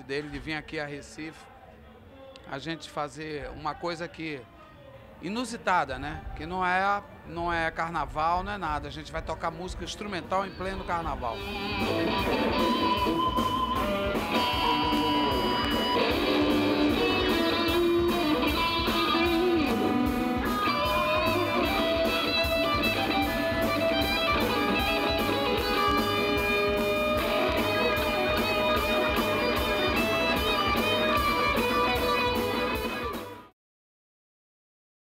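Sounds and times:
electric guitar lead lines: 11.3 - 33.5
drums and bass beat: 11.4 - 33.5.

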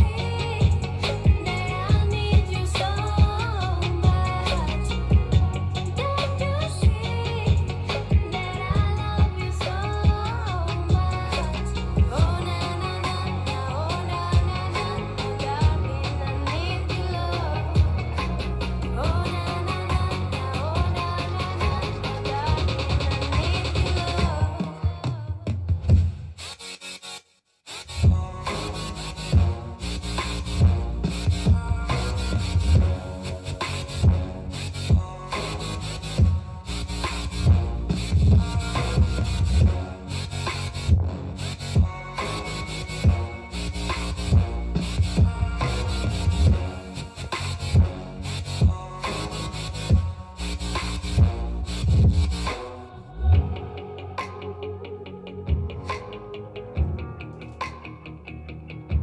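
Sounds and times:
song over speakers: 0.0 - 59.0
track with strong bass beat: 0.0 - 59.0.

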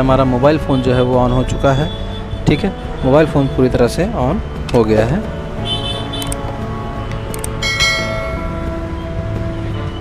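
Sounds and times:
background music: 0.0 - 10.0
bright bell chime: 7.6 - 8.8.

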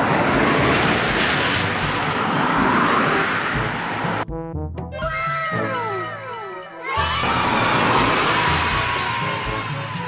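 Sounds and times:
cars driving on road: 0.0 - 4.3, 7.0 - 10.0.

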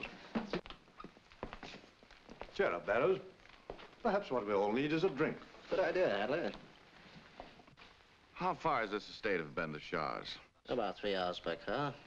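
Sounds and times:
footsteps on hard floor: 0.0 - 2.6, 3.5 - 4.0.

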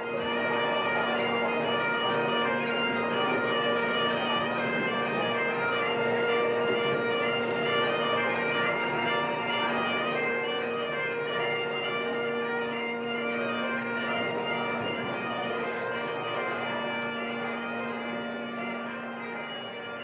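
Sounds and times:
bagpipes playing: 0.0 - 20.0.

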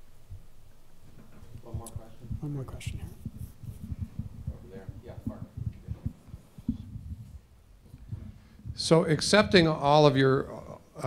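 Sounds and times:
microphone handling thumps: 0.3 - 10.3.

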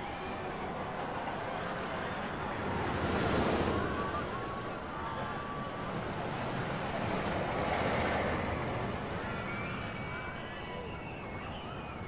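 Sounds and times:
roller coaster train rushing past: 0.0 - 12.0.

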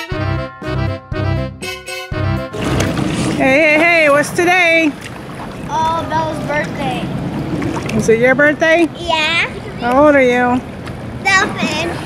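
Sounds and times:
outdoor background noise: 2.6 - 12.0.

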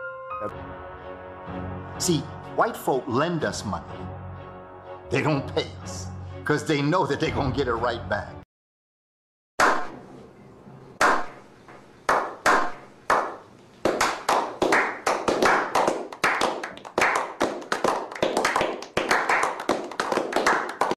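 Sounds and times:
group slow hand clapping: 11.0 - 11.4, 12.1 - 20.9.

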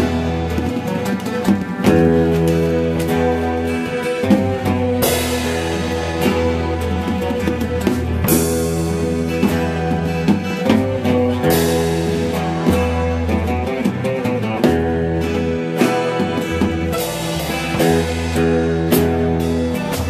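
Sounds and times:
bass line: 0.0 - 20.0
drum kit: 0.0 - 20.0
rock band playing: 0.0 - 20.0.

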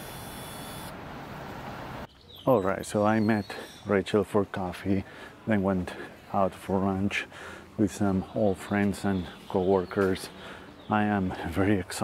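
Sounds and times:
vehicle road and engine noise: 0.0 - 2.2, 5.1 - 12.0.

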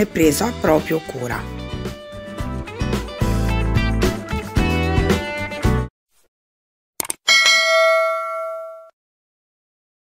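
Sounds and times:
quick clicks: 7.0 - 7.2
notification bell ding: 7.3 - 8.9.

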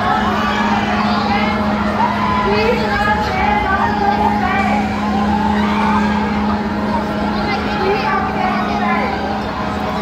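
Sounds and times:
crowd voices: 0.0 - 10.0
spinning ride drive humming: 0.0 - 10.0.

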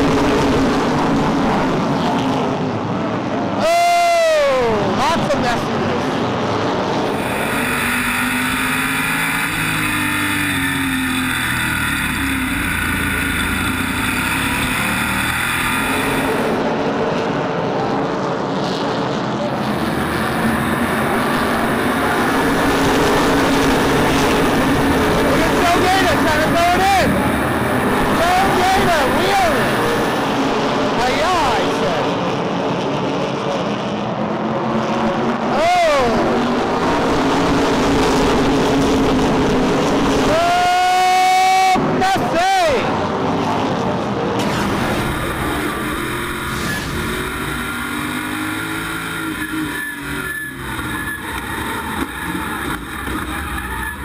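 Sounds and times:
race car engines racing: 0.0 - 54.0.

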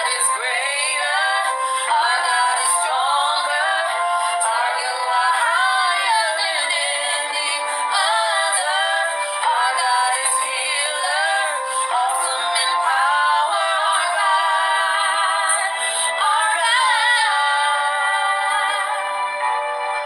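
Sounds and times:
music with high sung voice: 0.0 - 20.0.

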